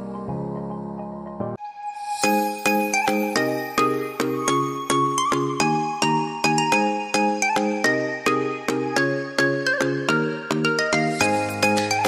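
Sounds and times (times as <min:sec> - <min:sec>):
light instrumental music: 0:00.0 - 0:12.0.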